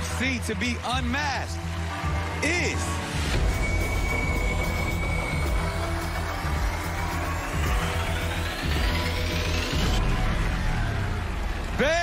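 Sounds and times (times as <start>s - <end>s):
pulsing bass: 3.2s - 12.0s
rising high synth sweep: 3.4s - 11.8s.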